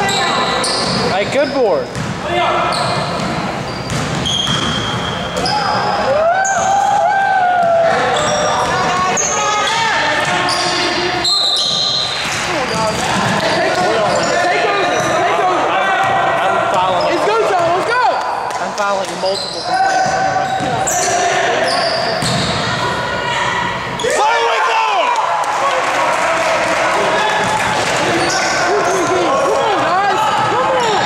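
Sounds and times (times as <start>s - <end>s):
sneaker squeaks: 0.0s - 6.8s, 8.0s - 15.4s, 16.8s - 17.8s, 19.2s - 24.2s, 28.1s - 31.0s
players shouting: 19.6s - 31.0s.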